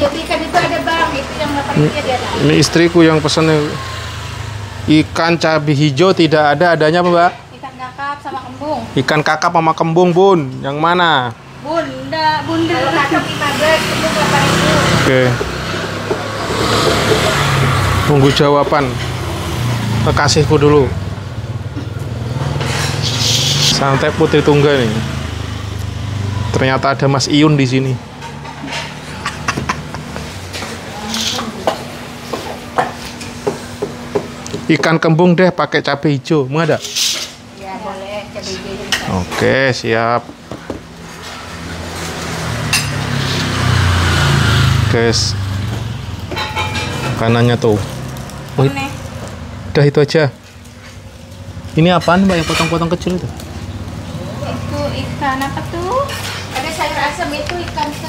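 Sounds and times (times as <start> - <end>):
vehicle engine passing by: 0.0 - 6.7, 11.8 - 32.4, 41.0 - 58.0
dishes clinking: 42.6 - 43.1, 46.3 - 47.2, 51.9 - 52.9.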